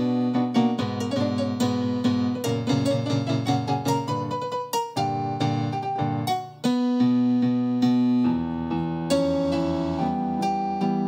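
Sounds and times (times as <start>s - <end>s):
electric piano chords: 0.0s - 11.0s.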